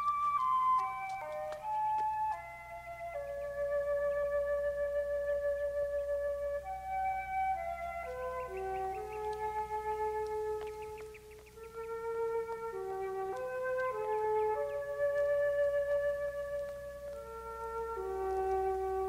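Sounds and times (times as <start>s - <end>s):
orchestral woodwind melody: 0.0s - 19.0s.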